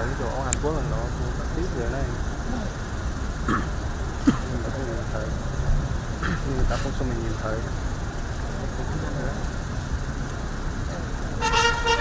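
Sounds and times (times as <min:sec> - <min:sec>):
cars idling rumble: 0:00.0 - 0:12.0
faint voices: 0:00.0 - 0:12.0
brass band playing held notes: 0:11.4 - 0:12.0.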